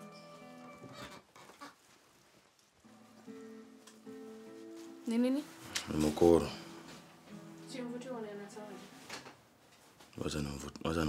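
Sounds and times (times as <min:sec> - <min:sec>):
background music of held notes: 0:00.0 - 0:01.2, 0:02.9 - 0:09.2.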